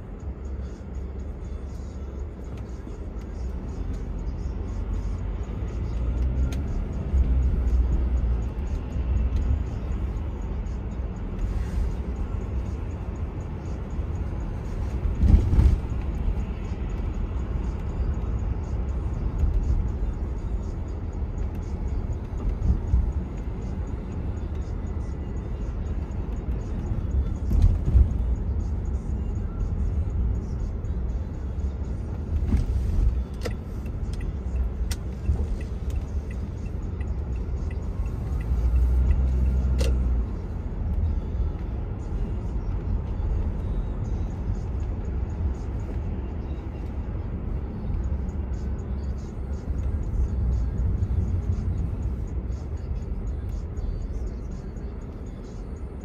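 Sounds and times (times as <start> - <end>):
car driving in slow traffic: 0.0 - 56.0
passing vehicles: 0.0 - 56.0.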